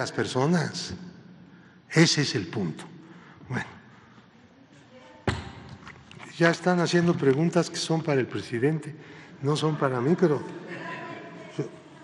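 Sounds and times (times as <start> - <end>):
sharp thump echoing in hall: 5.2 - 5.9.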